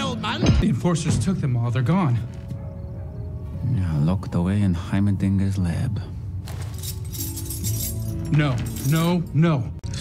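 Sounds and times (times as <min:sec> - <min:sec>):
low background music: 0:00.0 - 0:10.0
metal keys jangling: 0:06.5 - 0:09.4.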